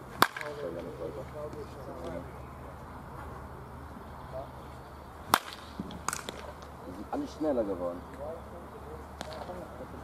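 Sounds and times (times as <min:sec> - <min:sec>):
bat cracking a baseball: 0:00.1 - 0:00.6, 0:05.3 - 0:06.7.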